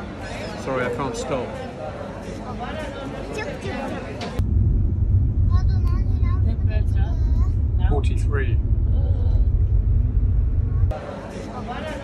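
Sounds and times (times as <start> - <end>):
car driving rumble from inside: 4.4 - 10.9.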